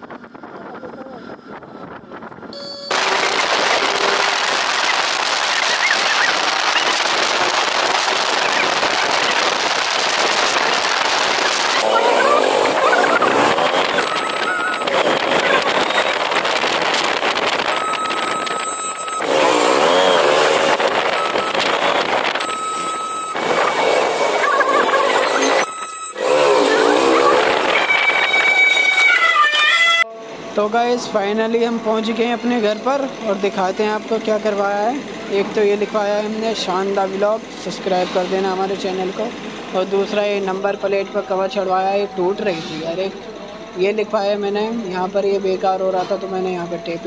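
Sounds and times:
wind rushing over microphone: 0.0 - 28.9
road and traffic noise: 1.2 - 47.0
motorcycle engine: 2.9 - 29.4
warbling vehicle horn: 25.6 - 30.5.

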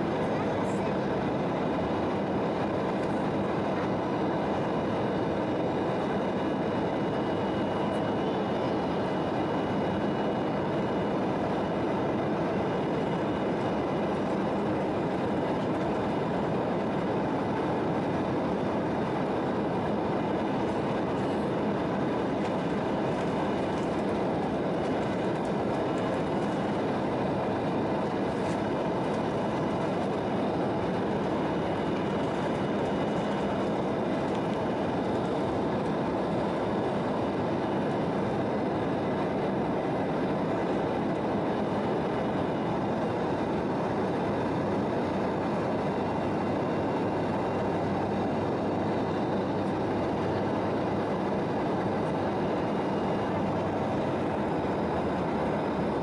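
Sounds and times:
jet engine roar in cabin: 0.0 - 56.0.

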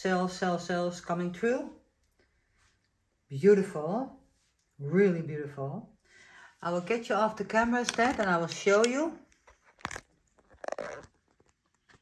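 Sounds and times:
camera handling clicks and rustle: 7.9 - 12.0.

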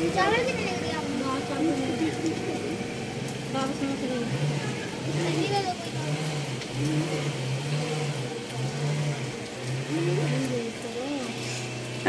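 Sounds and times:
light rain hissing: 0.0 - 12.0.

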